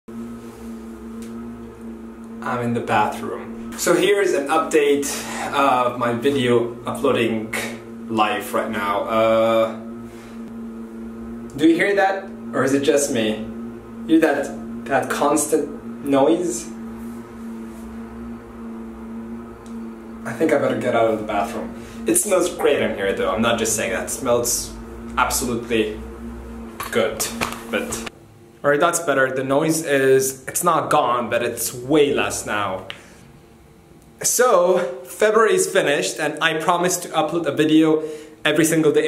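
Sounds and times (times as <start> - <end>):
steady hum: 0.1 - 39.0.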